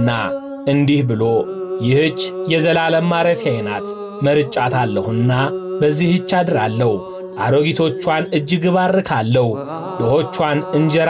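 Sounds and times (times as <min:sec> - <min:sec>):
background music held tone: 0:00.0 - 0:11.0
man narrating: 0:00.0 - 0:11.0.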